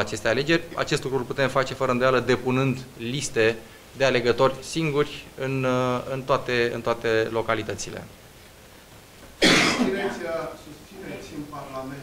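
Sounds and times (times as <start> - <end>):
man clearing throat: 9.4 - 10.2
man coughing: 9.4 - 10.2.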